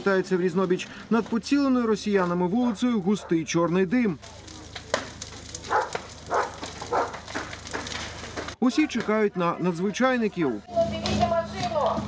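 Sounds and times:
fire crackling: 0.0 - 12.0
roofing cracking in heat: 0.0 - 12.0.

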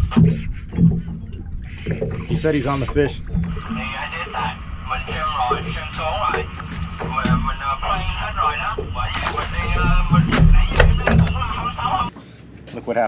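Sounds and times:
indistinct voices talking: 1.7 - 12.1.

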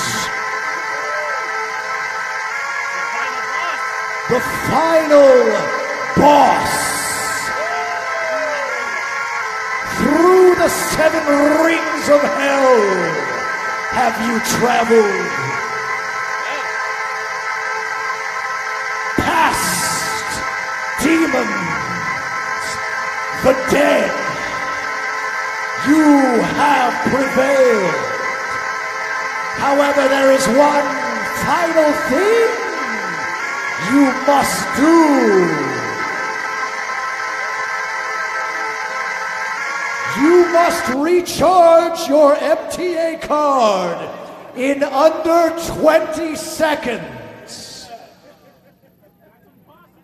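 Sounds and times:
held synthesizer chord: 0.0 - 48.2.

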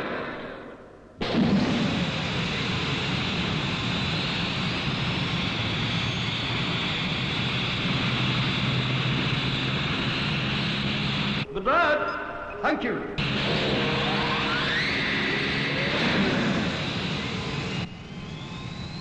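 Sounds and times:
rocket engine rushing: 0.0 - 11.4, 13.2 - 19.0
low drone: 0.0 - 11.6, 12.2 - 19.0
faint rising whine: 1.3 - 11.5, 13.2 - 19.0.

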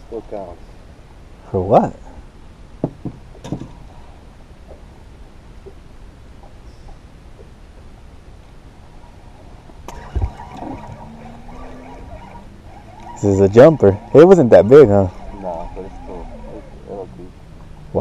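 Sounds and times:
water around a boat: 0.0 - 18.0
wind: 0.0 - 18.0
heavy thump: 2.8 - 3.8
light knocks: 2.8 - 3.8.

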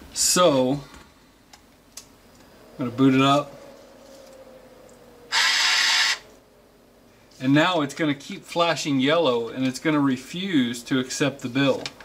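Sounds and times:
bill acceptor motor whirring: 5.3 - 6.2.

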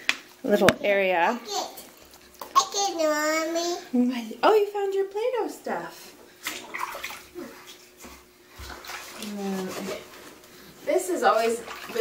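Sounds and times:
bathwater splashing: 6.2 - 12.0.

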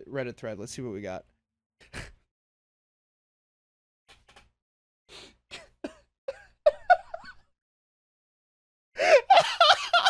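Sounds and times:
man laughing: 6.3 - 7.4, 9.0 - 10.0.

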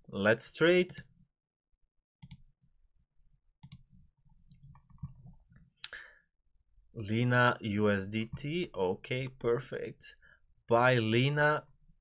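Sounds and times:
computer mouse clicks: 2.2 - 2.4, 3.6 - 5.6.

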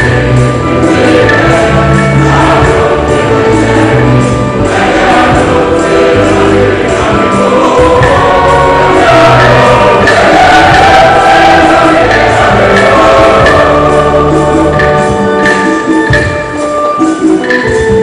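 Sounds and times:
choir singing a hymn: 0.0 - 16.2
instrumental accompaniment: 0.0 - 18.0.

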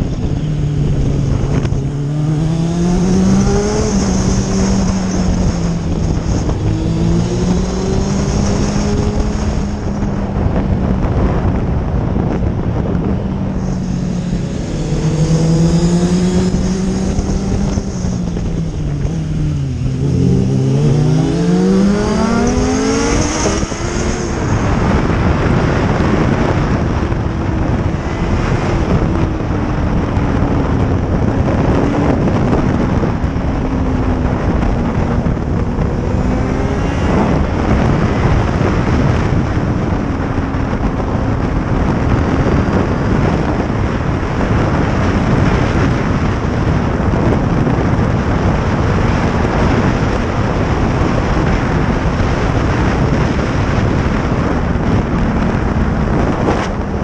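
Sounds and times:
motorcycle engine revving: 0.0 - 57.0
wind on microphone: 0.0 - 57.0.

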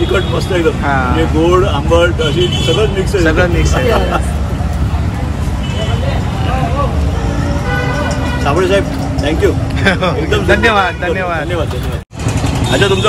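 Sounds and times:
people talking: 0.0 - 7.0, 8.4 - 12.0, 12.7 - 13.0
low rumble of street traffic: 0.0 - 13.0.

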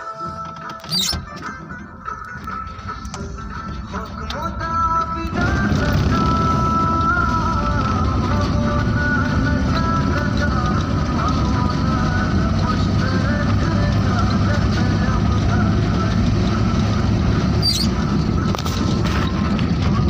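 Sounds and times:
music playing: 0.0 - 20.0
car road rumble: 0.5 - 20.0.

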